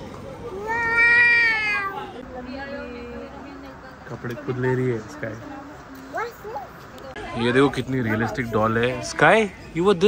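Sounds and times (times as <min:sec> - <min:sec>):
toddler's high-pitched vocal call: 0:00.5 - 0:02.1.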